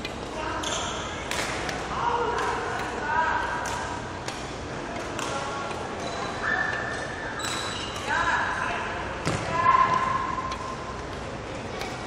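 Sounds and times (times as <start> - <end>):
court shoes squeaking: 0.0 - 1.9, 3.7 - 8.3.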